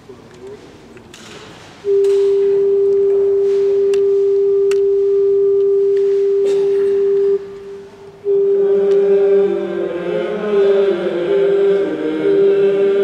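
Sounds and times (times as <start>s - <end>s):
steady pure tone: 1.8s - 13.0s.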